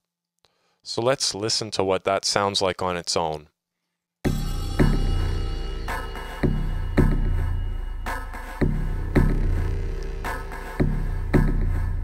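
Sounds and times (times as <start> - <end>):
deep synthesized drum hits: 4.3 - 12.0.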